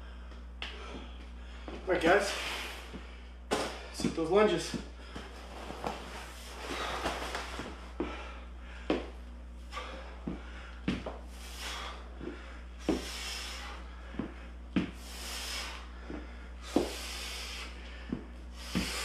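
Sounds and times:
hard breathing: 0.0s - 4.0s, 4.7s - 19.0s
thuds on hard floor: 3.5s - 4.1s.

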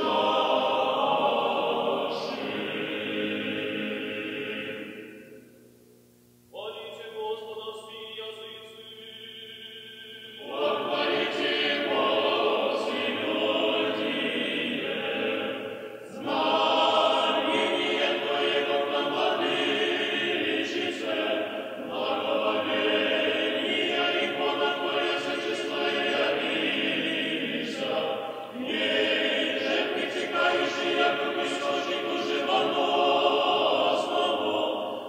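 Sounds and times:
choir singing liturgical chant: 0.0s - 5.3s, 6.6s - 35.0s.

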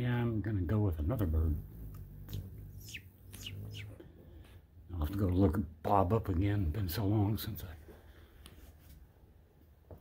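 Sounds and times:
hummingbird chip notes: 1.1s - 4.0s.

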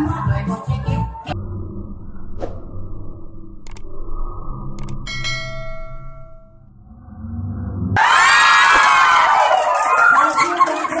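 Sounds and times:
bright bell-like ding: 5.1s - 6.7s
children cheering and shouting: 8.0s - 11.0s.

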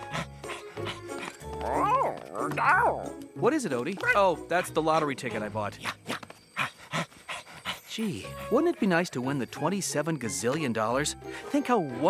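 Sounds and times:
cartoon background music: 0.0s - 6.2s, 7.8s - 12.0s
cartoon dog barking voice: 1.7s - 3.1s.

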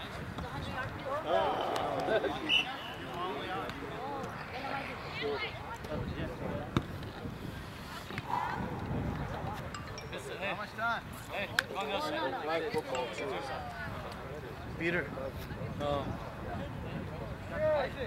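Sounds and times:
distant people talking: 0.2s - 18.0s.

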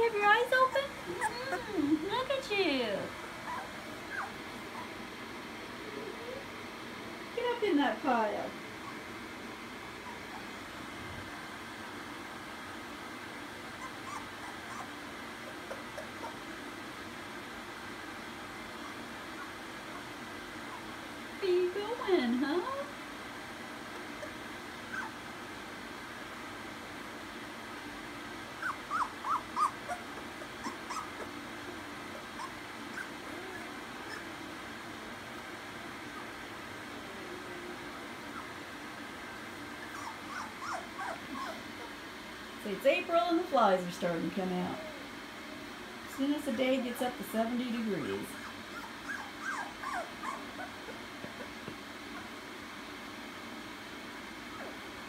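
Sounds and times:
background hiss: 0.0s - 55.0s
puppies whimpering and squeaking: 0.5s - 2.1s, 3.3s - 5.0s, 10.0s - 10.6s, 13.8s - 16.5s, 24.0s - 25.2s, 28.6s - 34.5s, 39.8s - 42.0s, 48.3s - 51.6s
puppy wavering cry: 0.6s - 2.0s, 3.4s - 5.0s, 13.7s - 16.6s, 24.0s - 25.2s, 28.6s - 34.5s, 39.8s - 42.0s, 48.3s - 51.1s.

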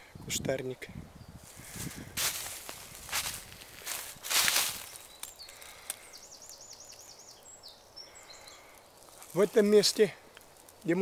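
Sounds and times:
footsteps through dry leaves: 1.4s - 5.9s, 8.8s - 11.0s.

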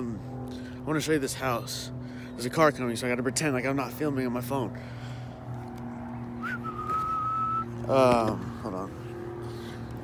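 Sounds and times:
car engine hum: 0.0s - 10.0s
person whistling: 6.4s - 7.7s.

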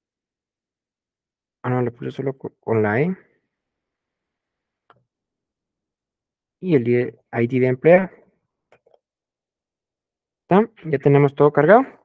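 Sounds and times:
man speaking: 1.6s - 3.2s, 6.6s - 8.2s, 10.5s - 12.0s
faint keyboard clicks: 8.7s - 9.1s.

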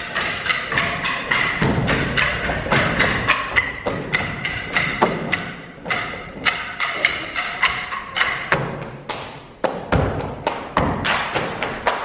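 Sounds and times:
folk band music: 0.0s - 9.0s
wooden sticks clacking: 0.0s - 12.0s.

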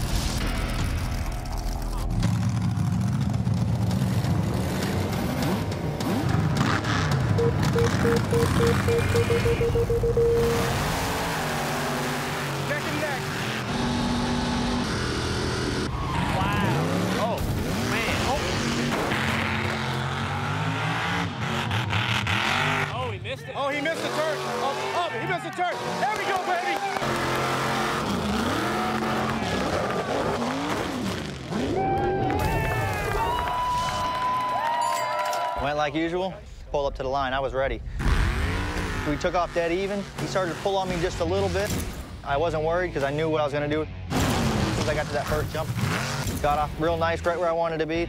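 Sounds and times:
truck engines revving: 0.0s - 33.3s, 37.8s - 48.0s.

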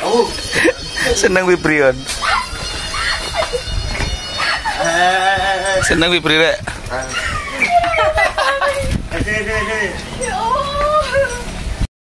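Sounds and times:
high-pitched vocal cry: 2.0s - 6.1s, 7.1s - 11.5s.

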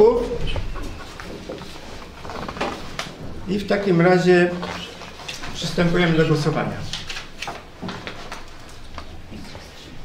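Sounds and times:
person speaking: 0.0s - 1.9s, 3.4s - 7.3s, 9.0s - 10.0s.

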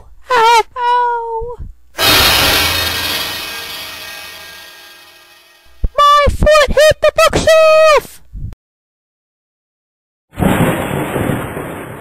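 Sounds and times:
loud crash: 2.0s - 5.9s.

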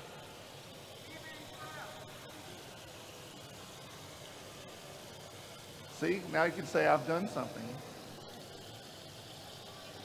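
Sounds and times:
cheese sizzling in a skillet: 0.0s - 10.0s.

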